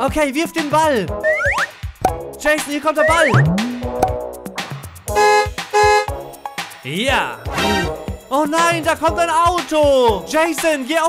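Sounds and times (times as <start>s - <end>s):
car horn honking: 5.1s - 6.2s.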